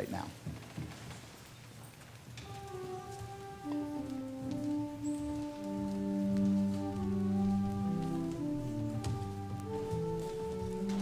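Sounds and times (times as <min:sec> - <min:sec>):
slow held chords: 0:02.4 - 0:11.0.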